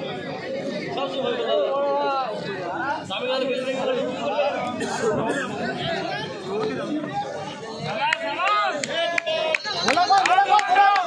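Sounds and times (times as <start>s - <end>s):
many people talking: 0.0s - 11.0s.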